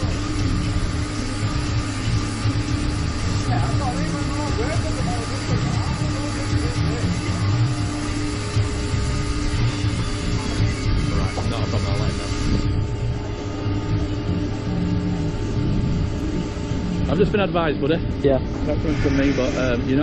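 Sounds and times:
constant hum: 0.0 - 20.0
faint voices: 3.4 - 20.0.

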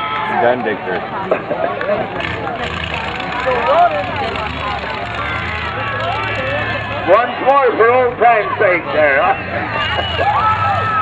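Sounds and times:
car engines droning: 0.0 - 11.0.

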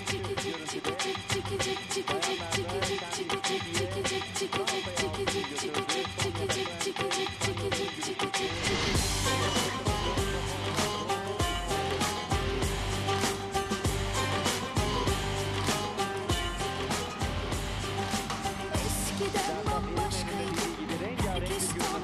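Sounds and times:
music with drum beat and bass: 0.0 - 22.0.

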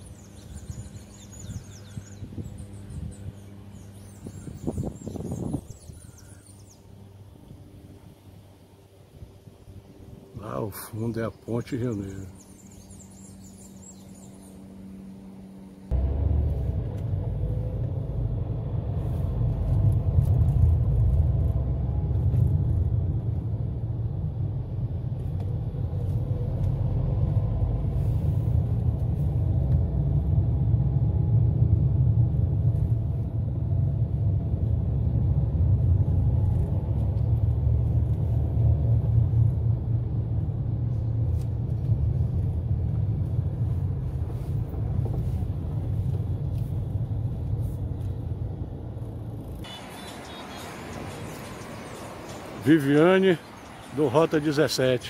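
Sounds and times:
car engine rumble: 0.0 - 55.0
tyres on road: 0.0 - 55.0.

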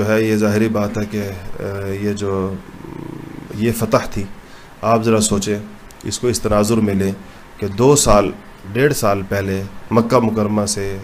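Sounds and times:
low buzzing: 0.7 - 4.5
man lecturing: 3.5 - 11.0.

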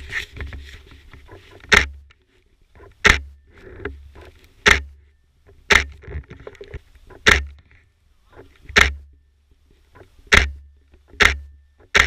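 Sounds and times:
rustling: 0.0 - 12.0.

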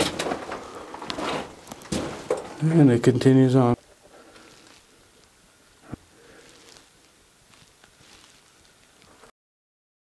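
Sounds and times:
faint movement noises: 0.0 - 9.3.

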